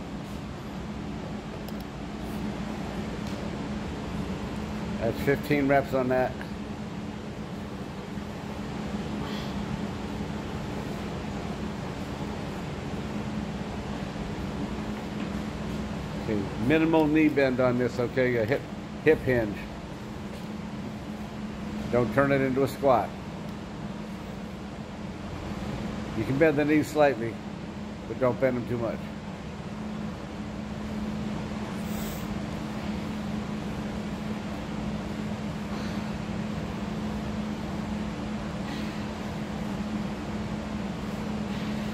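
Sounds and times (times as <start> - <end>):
electric fan humming: 0.0 - 41.9.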